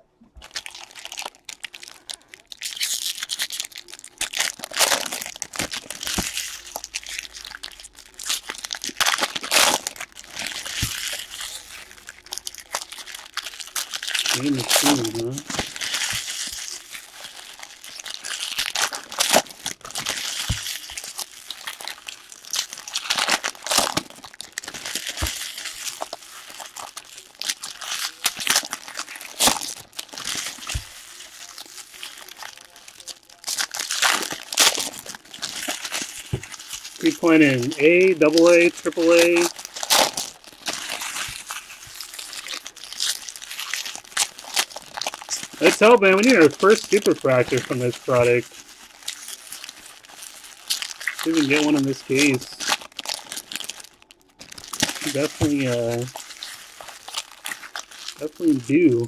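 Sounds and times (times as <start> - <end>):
foil wrappers crinkling and tearing: 0.4 - 59.0
cards being handled: 45.6 - 48.5, 51.2 - 52.6.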